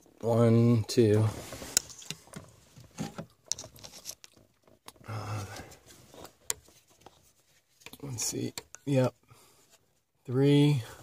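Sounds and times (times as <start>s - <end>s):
metallic clicks and scrapes: 1.4s - 5.0s.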